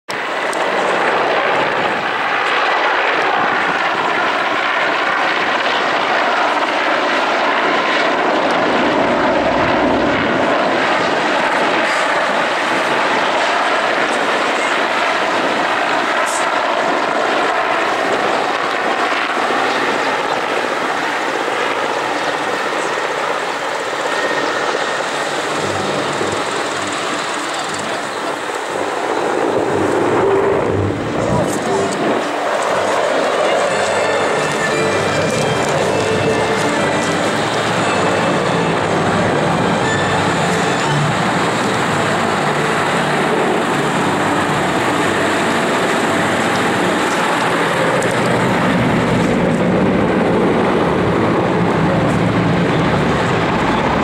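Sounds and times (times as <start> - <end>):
helicopter flying past overhead: 0.1 - 54.0.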